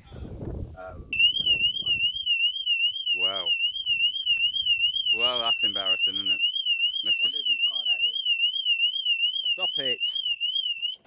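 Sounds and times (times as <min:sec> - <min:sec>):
car alarm siren warbling: 0:01.2 - 0:11.0.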